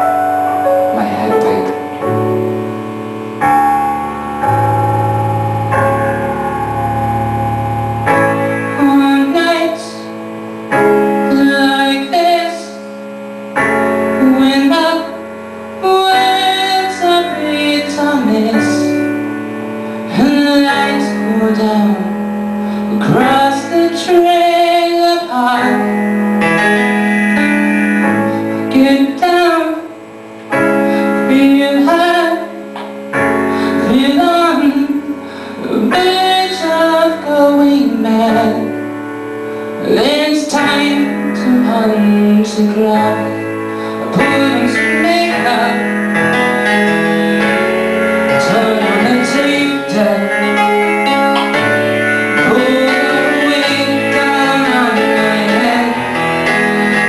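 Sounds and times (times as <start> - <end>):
person singing: 0.0 - 39.0, 39.6 - 57.0
live rock band playing: 0.0 - 57.0
strummed guitar: 0.0 - 57.0
sustained keyboard chords: 0.0 - 57.0.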